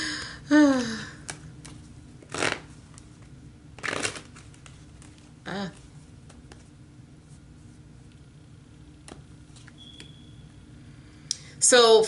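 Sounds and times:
cards shuffling swishes: 1.3s - 3.1s, 3.8s - 7.5s.

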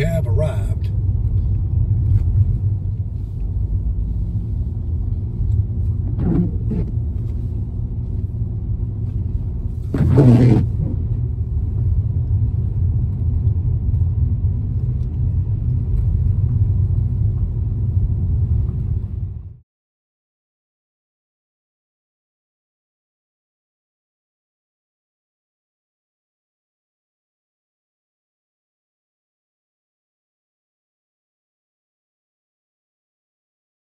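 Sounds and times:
car engine idling: 0.0s - 19.4s.

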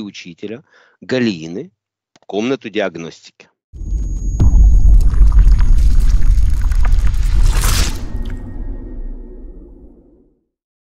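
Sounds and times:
deep rumbling boom: 3.8s - 10.2s
crackles: 4.4s - 10.1s
bright whoosh: 4.4s - 10.2s.

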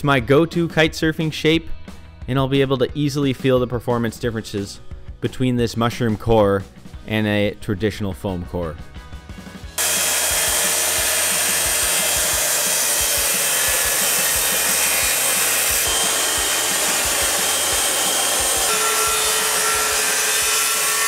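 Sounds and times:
circular saw cutting: 9.8s - 21.0s
motor whine: 9.8s - 21.0s.

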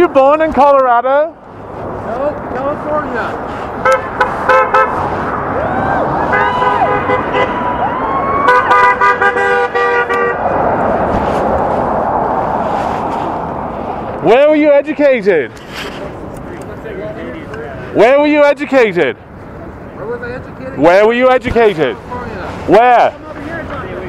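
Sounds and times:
street noise: 0.0s - 24.0s
car horns honking: 3.8s - 5.2s, 6.3s - 10.6s
distant shouting voices: 5.4s - 9.4s.

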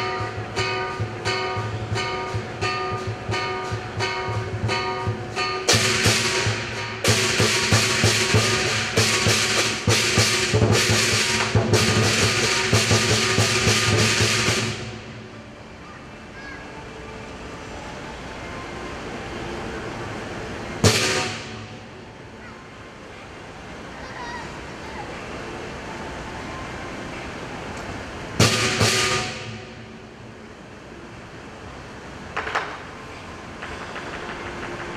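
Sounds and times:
loud cymbal crash: 0.0s - 15.2s, 20.8s - 21.9s, 28.4s - 30.0s
drum cymbals and gong percussion: 0.0s - 15.4s, 20.7s - 22.0s, 28.2s - 30.5s
background noise: 0.0s - 34.9s.

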